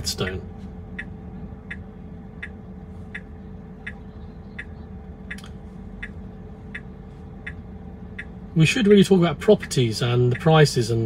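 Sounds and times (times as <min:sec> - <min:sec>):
low cabin hum: 0:00.0 - 0:11.0
turn signal ticking: 0:00.0 - 0:11.0.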